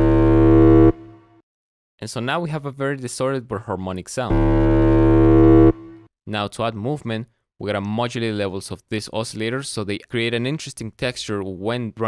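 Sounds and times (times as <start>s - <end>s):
distorted synthesizer bass note: 0.0s - 1.3s, 4.3s - 6.1s.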